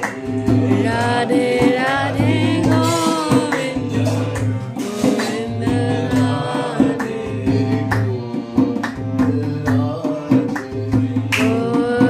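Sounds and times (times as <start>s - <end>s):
hand clapping: 0.0s - 1.2s, 2.7s - 5.5s, 6.2s - 11.8s
hand drum beat: 0.0s - 12.0s
harmonium drone: 0.0s - 12.0s
voices singing: 0.0s - 12.0s.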